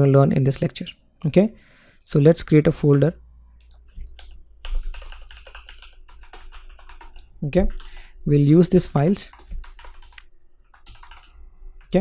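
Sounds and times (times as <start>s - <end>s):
typing on computer keyboard: 3.6s - 8.1s, 8.8s - 11.9s.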